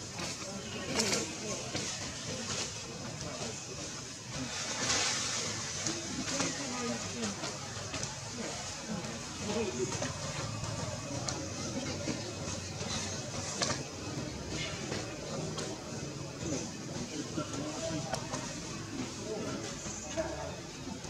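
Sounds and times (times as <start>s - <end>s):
faint indistinct voices: 0.0s - 21.0s.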